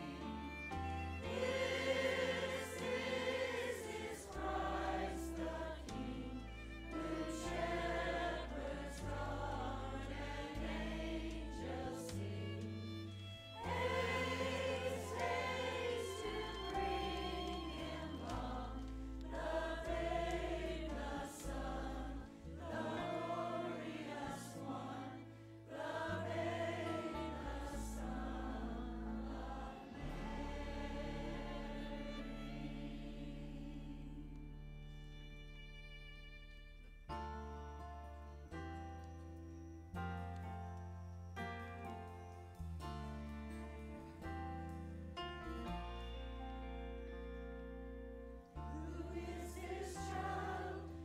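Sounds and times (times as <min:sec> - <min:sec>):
mixed choir singing: 0:00.0 - 0:34.8, 0:48.6 - 0:51.0
long low bass notes: 0:00.0 - 0:39.7.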